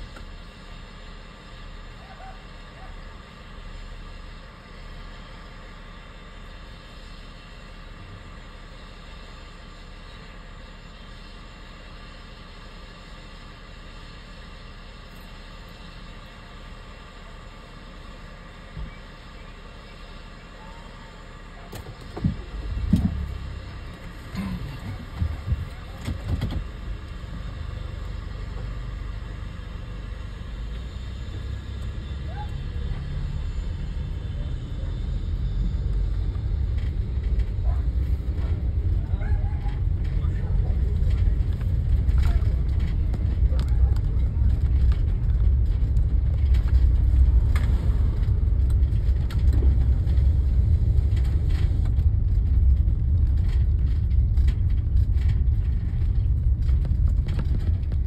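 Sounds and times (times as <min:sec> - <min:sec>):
car rumbling along street: 0:00.0 - 0:58.0.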